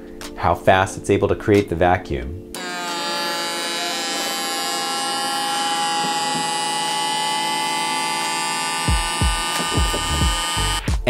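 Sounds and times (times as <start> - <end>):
vacuum pump motors whining: 2.6 - 10.9.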